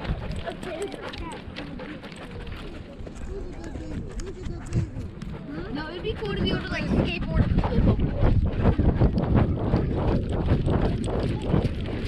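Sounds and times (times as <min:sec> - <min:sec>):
paws thudding: 0:00.0 - 0:12.0
voices: 0:00.0 - 0:12.0
wind on microphone: 0:02.0 - 0:12.0.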